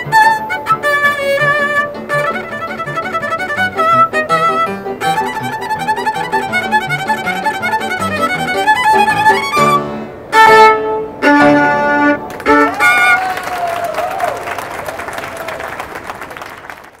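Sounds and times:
violin and piano chords: 0.0 - 13.1
audience applauding: 12.3 - 17.0.

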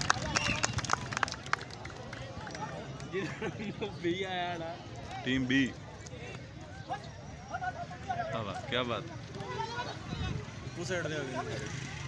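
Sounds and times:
crowd murmuring and calling out: 0.0 - 12.0.

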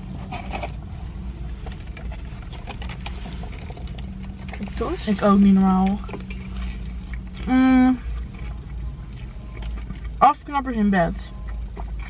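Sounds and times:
crunchy chewing: 0.0 - 10.2, 11.3 - 12.0
low hum in car cabin: 0.0 - 12.0.

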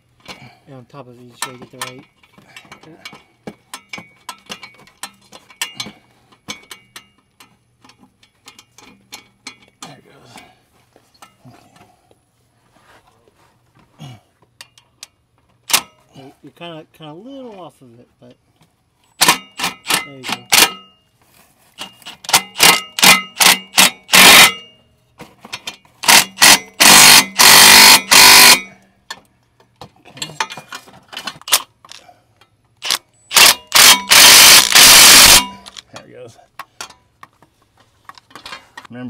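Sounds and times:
impact wrench hammering: 19.2 - 20.9, 22.2 - 24.7, 26.0 - 28.8, 32.8 - 35.8.

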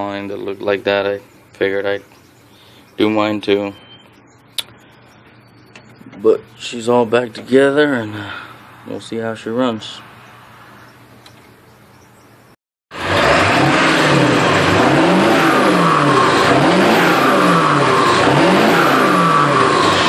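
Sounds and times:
faint hum: 0.2 - 11.3
diesel engine running: 12.9 - 20.0
turbocharger whistle: 13.0 - 20.0.

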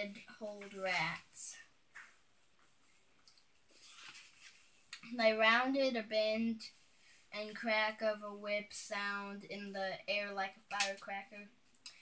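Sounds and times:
faint rustle: 0.4 - 5.0.

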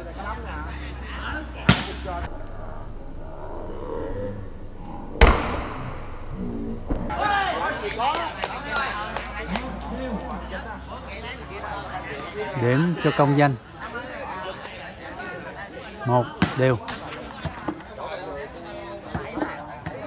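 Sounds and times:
people shouting and chattering: 0.0 - 2.3, 7.0 - 20.0
volleyball being struck by hand: 1.7 - 2.1, 16.4 - 17.6.

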